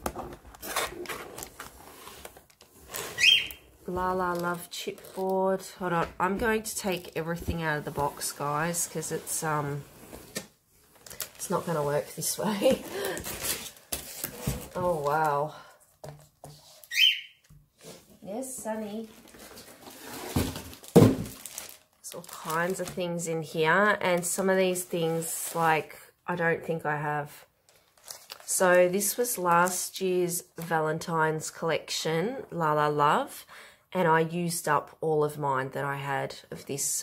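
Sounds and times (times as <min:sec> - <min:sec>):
board rustling in cardboard box: 0:07.4 - 0:15.1, 0:19.0 - 0:21.8.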